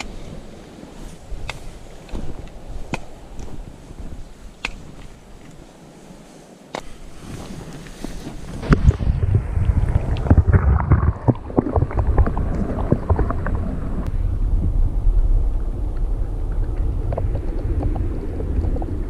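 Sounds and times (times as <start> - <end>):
small clicks and crackles: 0.0 - 5.8
muffled underwater rumble: 8.4 - 19.0.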